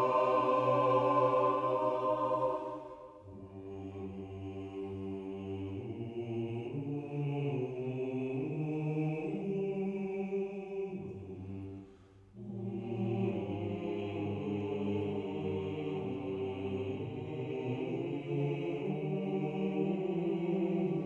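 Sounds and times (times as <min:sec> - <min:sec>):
mixed choir singing: 0:00.0 - 0:11.8, 0:12.4 - 0:21.0.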